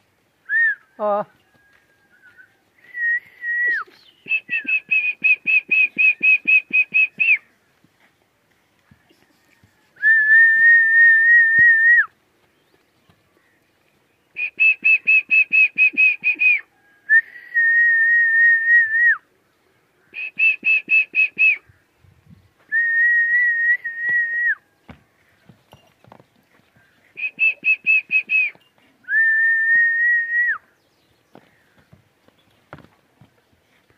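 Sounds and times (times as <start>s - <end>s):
person whistling: 0.5s - 0.8s, 2.8s - 7.4s, 10.0s - 12.1s, 14.4s - 19.2s, 20.2s - 21.6s, 22.7s - 24.6s, 27.2s - 30.6s.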